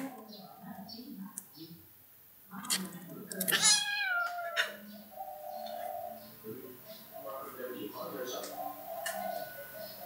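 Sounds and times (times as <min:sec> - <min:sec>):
kitten meowing: 0:03.5 - 0:04.8.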